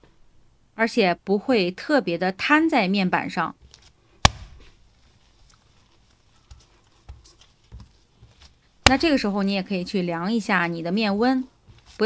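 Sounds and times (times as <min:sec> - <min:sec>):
hands kneading dough: 0:03.6 - 0:12.0.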